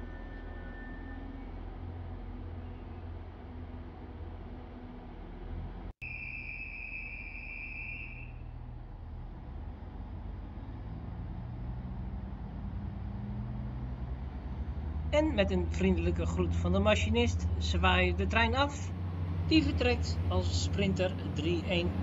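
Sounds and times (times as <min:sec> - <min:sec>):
diesel train engine drone: 0:00.0 - 0:22.0.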